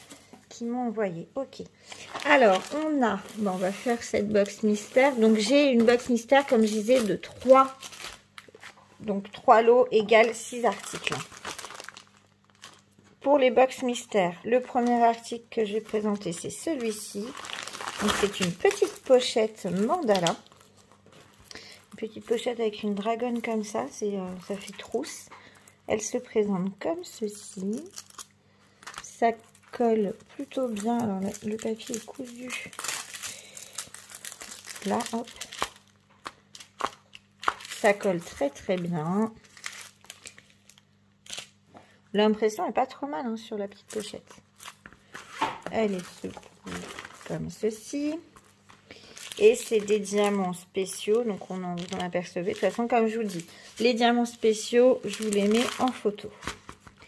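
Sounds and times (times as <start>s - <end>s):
plastic bag crinkling: 1.8s - 8.8s, 10.0s - 13.2s, 14.5s - 41.6s, 43.7s - 57.0s.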